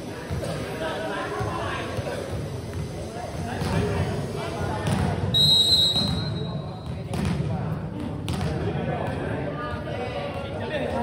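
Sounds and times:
chatter of people: 0:00.0 - 0:11.0
referee's whistle blast: 0:05.3 - 0:06.6.

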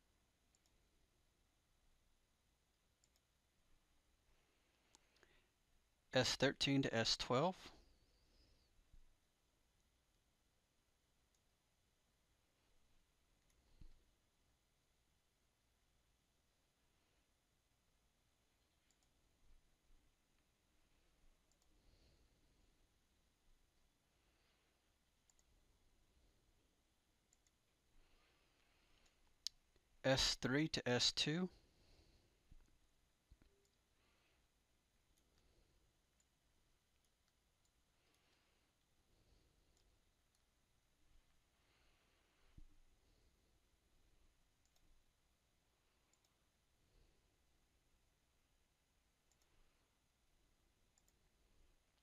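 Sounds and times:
computer mouse clicks: 0:00.5 - 0:00.8, 0:03.0 - 0:03.3, 0:18.7 - 0:19.2, 0:21.4 - 0:21.8, 0:25.2 - 0:25.6, 0:27.3 - 0:27.6, 0:44.6 - 0:45.0, 0:46.0 - 0:46.4, 0:49.2 - 0:49.6, 0:50.9 - 0:51.3
faint computer mouse clicks: 0:18.8 - 0:19.2, 0:25.2 - 0:25.5, 0:49.3 - 0:49.6, 0:50.9 - 0:51.2.

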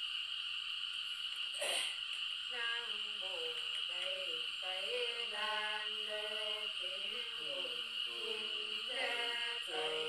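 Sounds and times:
night insects chirring: 0:00.0 - 0:10.0.

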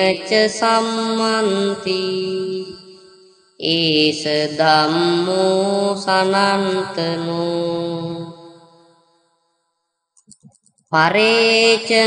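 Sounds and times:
person chanting: 0:00.0 - 0:02.9, 0:03.6 - 0:08.5, 0:11.0 - 0:12.0.

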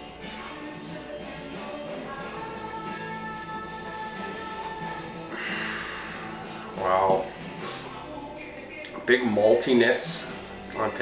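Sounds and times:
background music held notes: 0:00.0 - 0:11.0
person sniffing: 0:05.3 - 0:06.5, 0:07.6 - 0:08.0.

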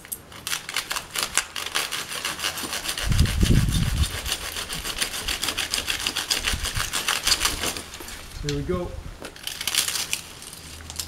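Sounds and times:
hand saw cutting stalk: 0:00.3 - 0:08.6.

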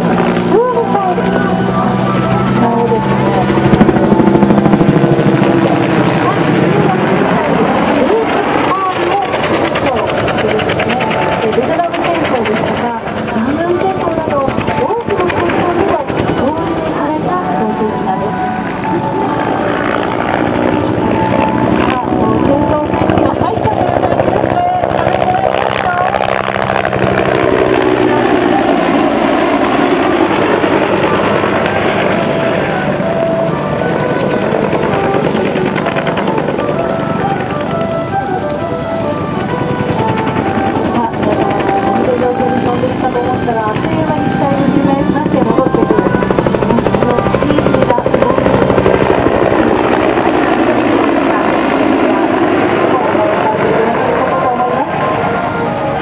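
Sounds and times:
helicopter engine and rotor: 0:00.0 - 0:56.0.

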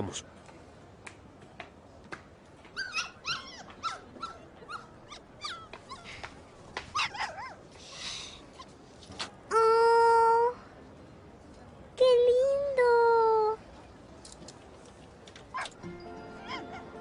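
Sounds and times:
puppy whimpering: 0:02.8 - 0:06.1.

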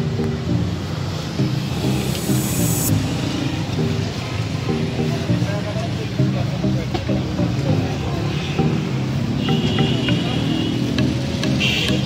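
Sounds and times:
car engines running: 0:00.0 - 0:12.0
road traffic noise: 0:00.0 - 0:12.0.

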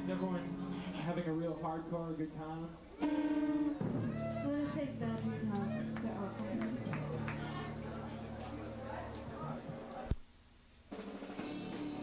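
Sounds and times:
electric guitar notes: 0:02.9 - 0:08.9.

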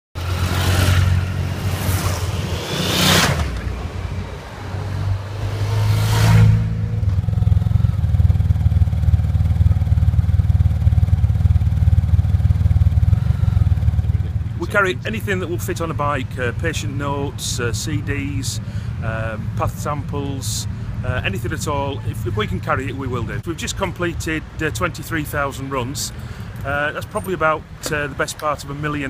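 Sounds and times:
motorcycles riding past: 0:00.2 - 0:15.6
motorcycle engine idling: 0:07.1 - 0:19.8.

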